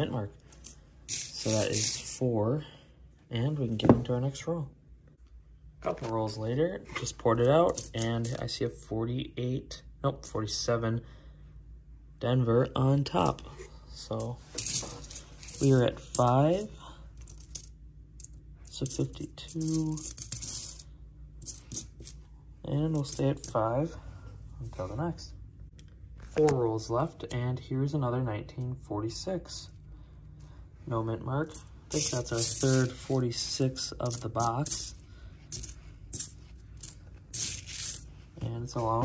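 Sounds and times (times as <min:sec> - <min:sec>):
coins clinking: 0:00.5 - 0:02.2, 0:07.7 - 0:08.4, 0:14.2 - 0:20.8, 0:21.4 - 0:22.2, 0:31.5 - 0:33.2, 0:34.0 - 0:38.1.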